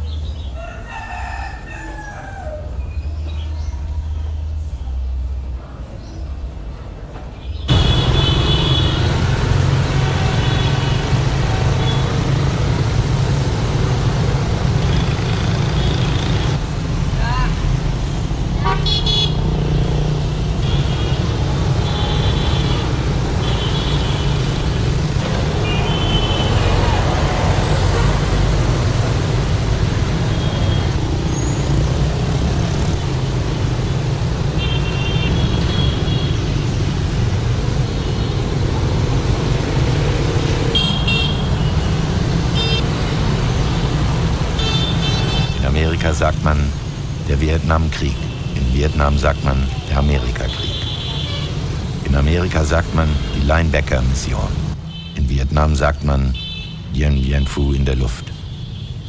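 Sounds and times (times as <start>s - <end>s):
traffic engine rumble: 2.0s - 59.0s
car horn toots: 18.6s - 19.4s.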